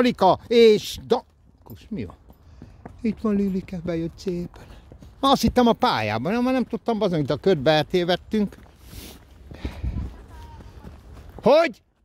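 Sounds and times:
horse hooves on dirt: 0:00.0 - 0:12.0.

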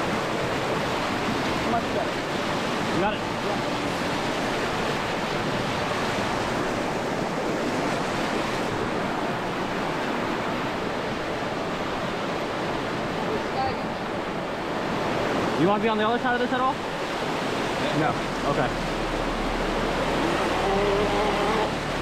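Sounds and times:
whitewater rushing: 0:00.0 - 0:22.0.

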